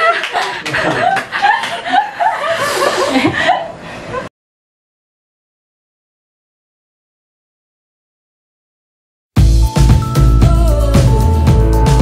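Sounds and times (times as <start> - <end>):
people laughing: 0.0 - 4.3.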